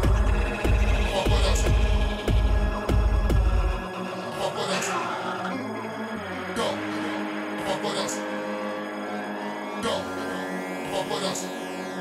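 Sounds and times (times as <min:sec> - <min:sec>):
kick drums dropping in pitch: 0:00.0 - 0:03.8
deep bass notes: 0:00.0 - 0:04.4.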